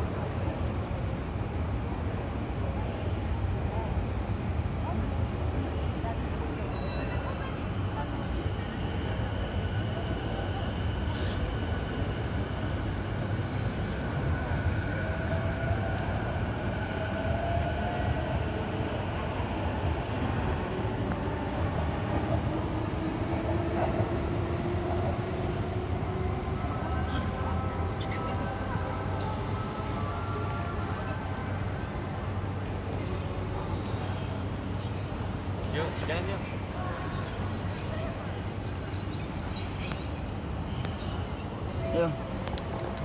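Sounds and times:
rumble of trains and traffic: 0.0 - 43.0.

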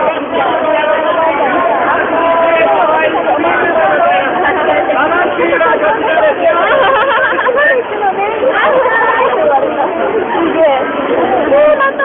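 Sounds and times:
dense crowd talking: 0.0 - 12.0.

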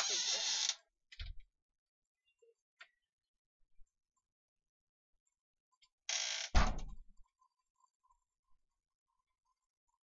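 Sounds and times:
door shutting with rattle: 6.5 - 7.0.

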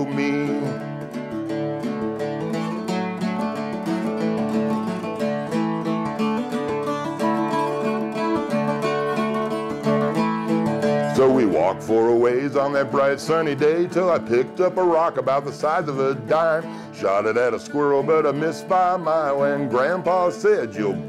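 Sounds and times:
acoustic guitar picking chords: 0.0 - 21.0.

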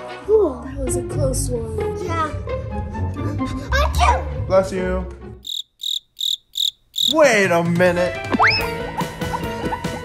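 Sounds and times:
background music: 0.0 - 5.5, 7.2 - 10.0
cricket chirping: 5.4 - 7.2.

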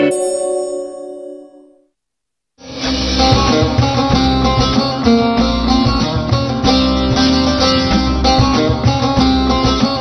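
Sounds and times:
struck chime ringing: 0.0 - 1.9.

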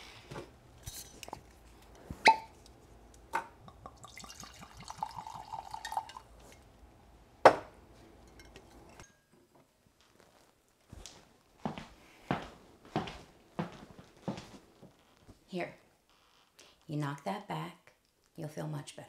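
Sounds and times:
liquid pouring into a glass: 3.6 - 6.4
glass clink: 3.7 - 6.6, 8.2 - 9.4
high-heel footsteps on tile: 10.9 - 14.9.

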